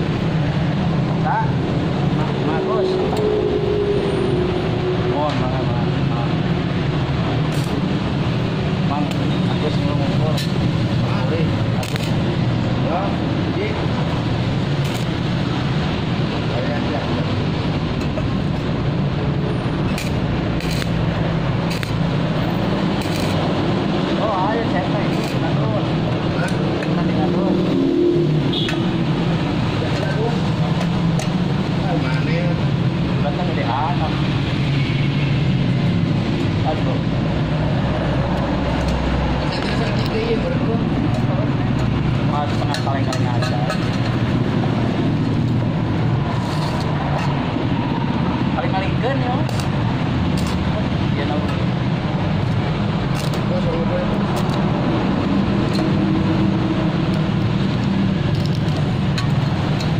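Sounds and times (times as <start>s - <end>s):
welding arc crackle: 7.4s - 8.4s, 11.6s - 12.7s, 14.1s - 15.9s, 18.0s - 24.1s, 24.9s - 26.6s, 54.3s - 59.9s.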